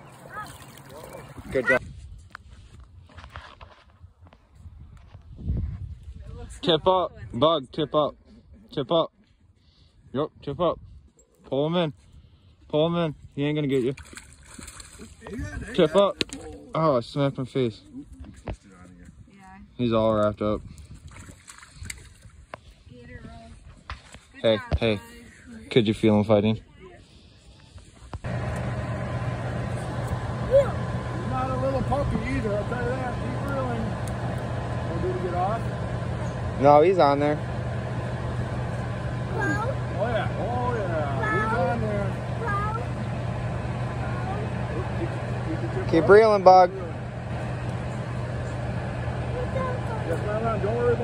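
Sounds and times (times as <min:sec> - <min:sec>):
fish splashing in water: 0:00.0 - 0:01.7, 0:13.9 - 0:15.3, 0:21.0 - 0:22.4
steady low hum: 0:25.1 - 0:51.0.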